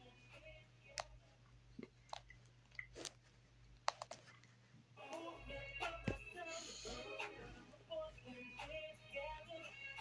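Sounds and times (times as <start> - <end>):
music: 0.0 - 1.2, 5.0 - 10.0.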